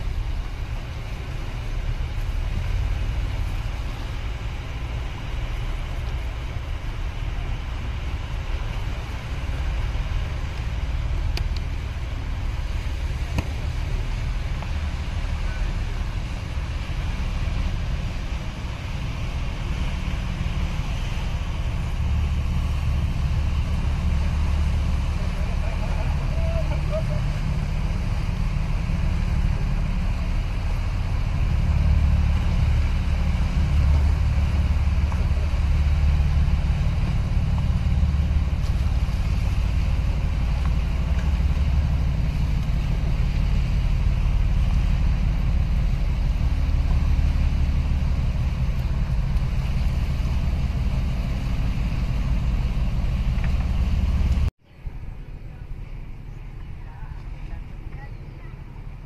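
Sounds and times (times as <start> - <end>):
boat engine rumble: 0.0 - 59.0
water noise: 0.0 - 59.0.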